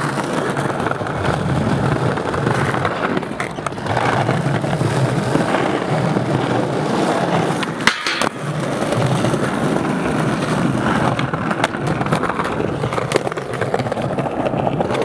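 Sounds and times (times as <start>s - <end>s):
skateboard sharp clack: 0.0s - 15.0s
skateboard wheels rolling on stone: 0.0s - 15.0s.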